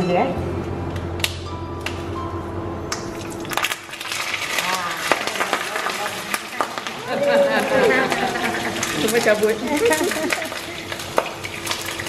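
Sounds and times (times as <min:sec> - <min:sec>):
leaves sizzling in hot oil: 0:03.4 - 0:07.1, 0:08.3 - 0:12.0.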